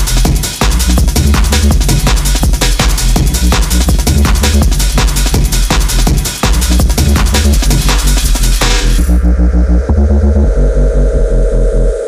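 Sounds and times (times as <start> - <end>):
pulsing bass line: 0.0 - 12.0
held synth tone: 9.0 - 12.0.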